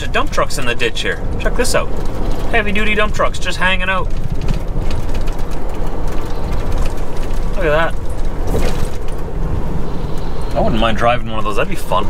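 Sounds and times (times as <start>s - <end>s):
faint light rattles: 0.0s - 10.9s
diesel engine rumble: 0.0s - 12.0s
road noise: 0.0s - 12.0s.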